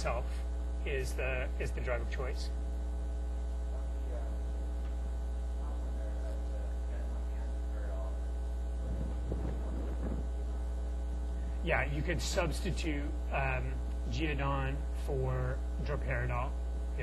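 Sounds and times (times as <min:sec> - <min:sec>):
electrical mains hum: 0:00.0 - 0:17.0
faint distant voice: 0:05.6 - 0:10.8.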